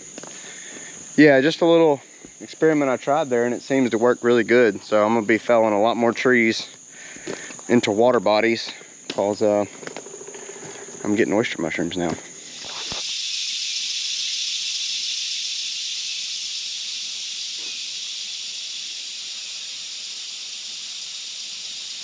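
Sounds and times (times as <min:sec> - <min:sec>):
insect chorus hissing: 0:00.0 - 0:22.0.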